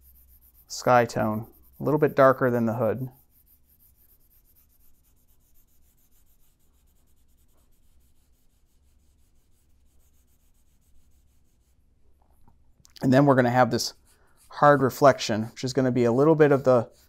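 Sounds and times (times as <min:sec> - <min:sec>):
pencil scratching on paper: 0:00.0 - 0:11.8, 0:13.2 - 0:17.0.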